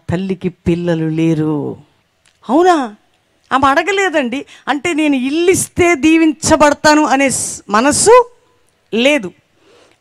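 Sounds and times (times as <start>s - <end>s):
woman speaking into microphone: 0.0s - 9.4s.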